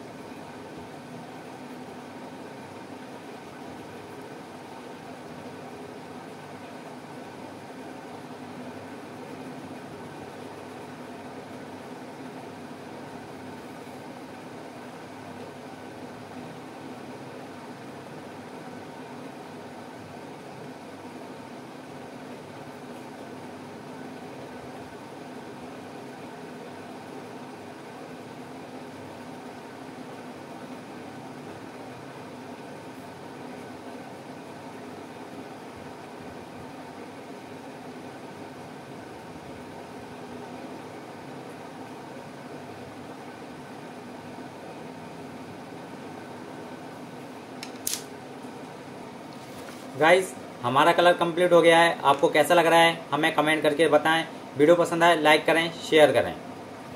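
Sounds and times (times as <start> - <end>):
mechanical hum: 0.0 - 56.9.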